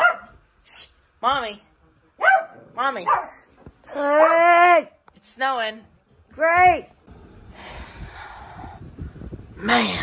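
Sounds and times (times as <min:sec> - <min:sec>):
low rumble on microphone: 0:07.1 - 0:10.0
person exhaling breathily: 0:07.5 - 0:09.3.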